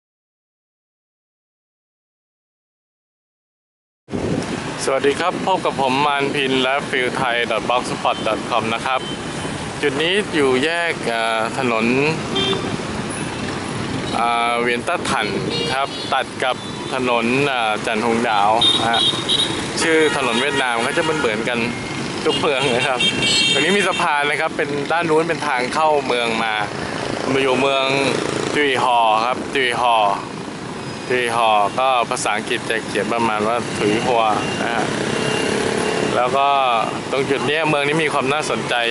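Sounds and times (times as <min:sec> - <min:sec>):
passing traffic noise: 0:04.1 - 0:38.9
man speaking: 0:04.8 - 0:09.2, 0:09.8 - 0:12.4, 0:14.1 - 0:19.2, 0:19.8 - 0:30.3, 0:31.1 - 0:35.0, 0:36.1 - 0:38.9.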